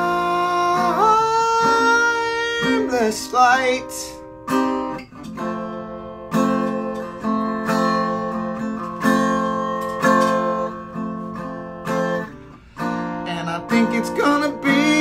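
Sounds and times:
acoustic guitar strumming chords: 0.0 - 15.0.

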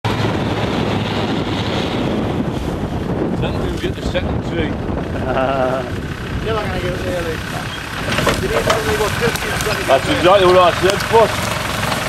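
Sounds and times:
car engine running: 0.0 - 12.0
wind buffeting microphone: 0.0 - 12.0.

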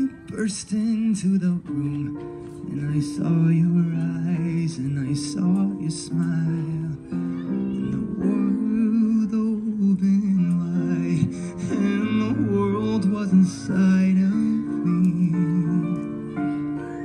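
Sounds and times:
man singing a slow ballad: 0.0 - 17.0
piano accompaniment: 0.0 - 17.0.

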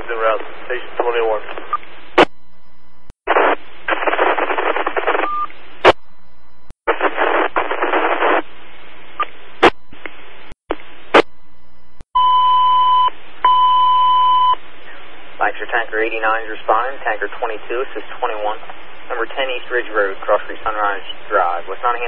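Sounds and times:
radio static hiss: 0.0 - 2.3, 3.3 - 6.0, 6.9 - 11.3, 14.7 - 22.0
short beep: 12.2 - 14.6.

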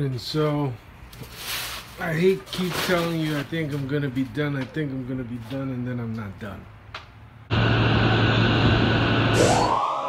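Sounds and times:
loud rushing noise: 7.5 - 10.0
low hum: 7.5 - 10.0
rising sweep: 7.5 - 10.0.

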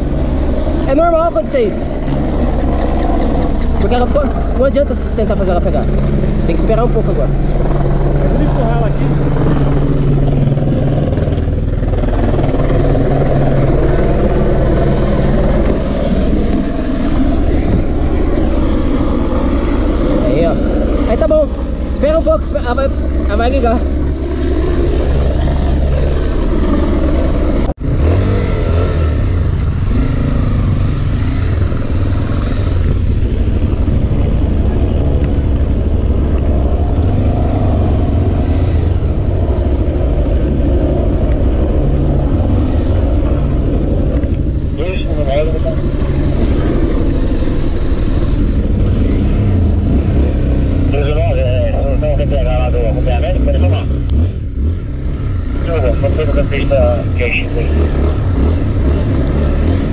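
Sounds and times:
motorcycle engine running: 0.0 - 59.9.

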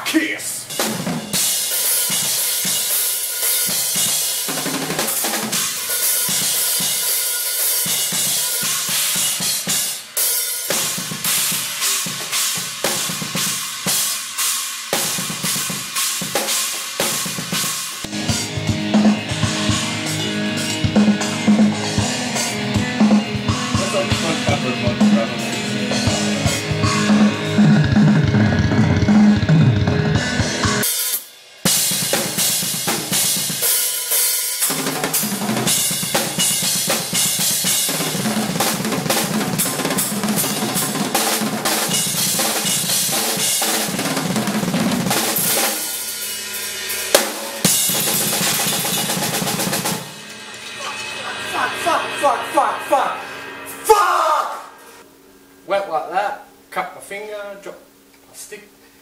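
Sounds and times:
drum kit played fast: 0.0 - 55.0
crashing cymbals: 0.6 - 29.6, 30.2 - 55.7.

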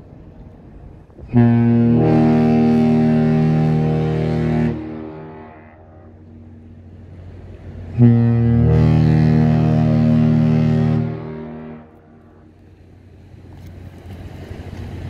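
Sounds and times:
ship horn blast: 1.2 - 12.7.

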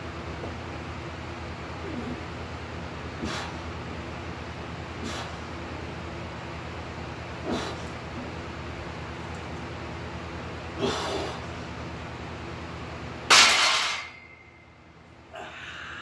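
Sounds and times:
man breathing hard: 15.3 - 16.0.

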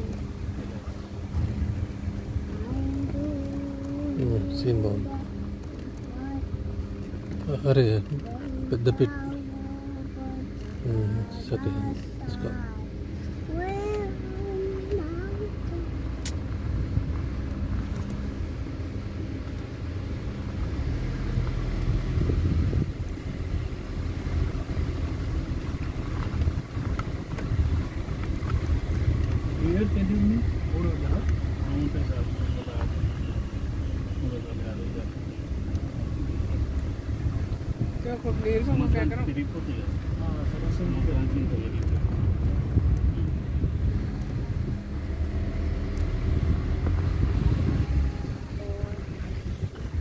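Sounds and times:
voices: 0.0 - 16.4, 29.0 - 45.0, 46.8 - 50.0
vehicle engine rumble: 0.0 - 50.0.

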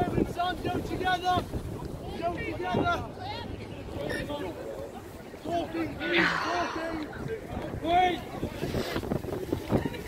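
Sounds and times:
wind rumbling on microphone: 0.0 - 4.0, 5.1 - 10.0.

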